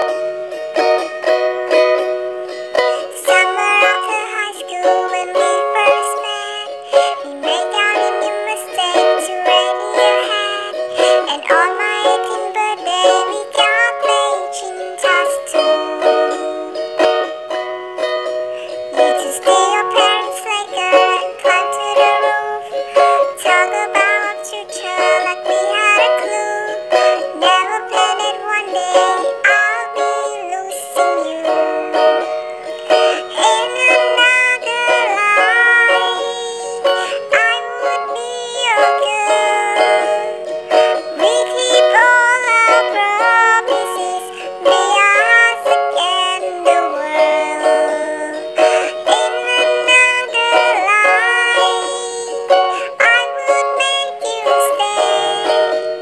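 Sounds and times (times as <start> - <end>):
ukulele plucking: 0.0 - 56.0
high edited singing voice: 2.7 - 17.0, 18.6 - 55.9.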